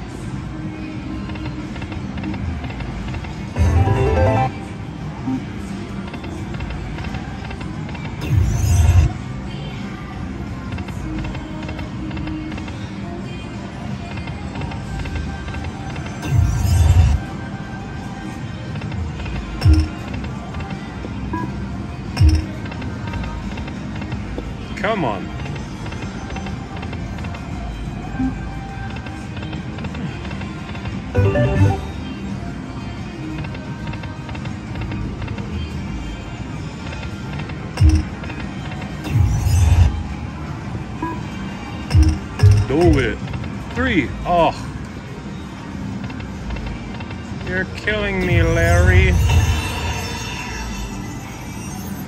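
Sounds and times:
casino background music: 1.2s - 52.0s
slot machine reel-spin sounds: 3.5s - 5.4s, 31.1s - 32.0s, 37.8s - 38.2s.

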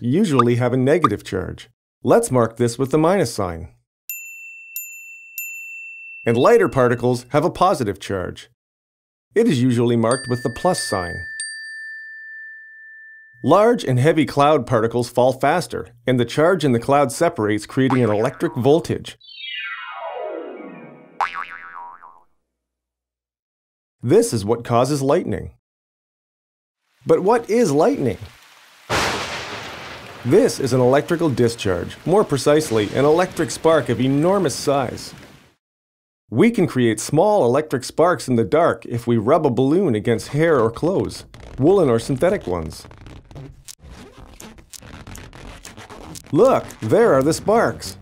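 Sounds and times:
springy cartoon boing: 17.9s - 22.4s
balloon rubbing against sweater: 41.0s - 48.0s.

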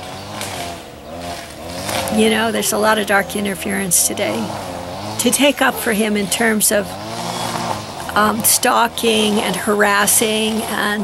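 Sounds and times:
engine running: 0.0s - 11.0s.

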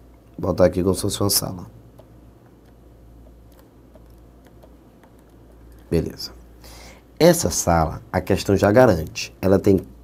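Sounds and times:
low steady hum: 0.0s - 10.0s
stylus tapping on tablet: 1.9s - 5.9s.

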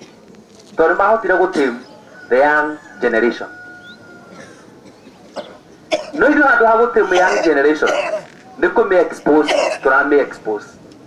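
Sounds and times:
low background noise: 0.0s - 11.0s
cough through horn loudspeaker: 4.3s - 6.4s, 7.0s - 8.3s, 9.2s - 10.0s.

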